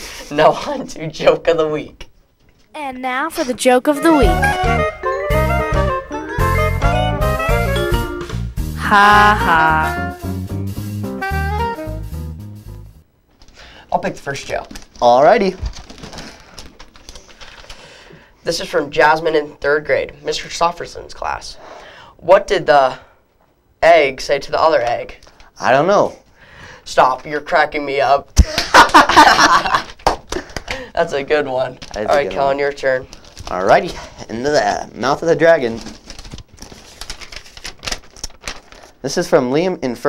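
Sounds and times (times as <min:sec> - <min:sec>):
paper crackling: 0:14.5 - 0:17.8, 0:31.6 - 0:33.8, 0:35.4 - 0:39.0
paper slips rustling: 0:35.4 - 0:39.0.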